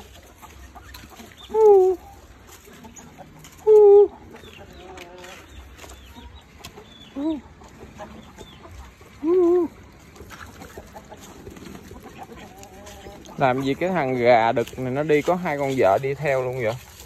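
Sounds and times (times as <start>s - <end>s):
chickens calling: 0.0s - 17.0s.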